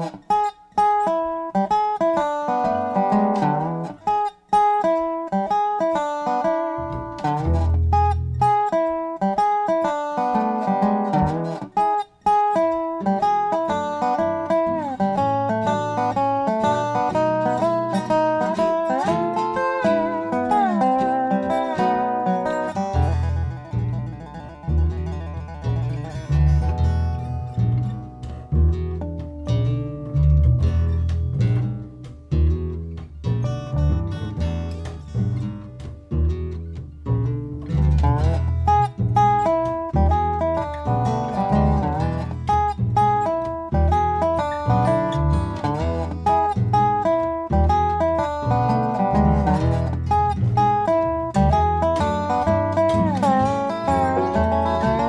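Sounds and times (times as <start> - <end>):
plucked guitar melody: 0.0 - 55.0
heavy low notes: 22.8 - 55.0.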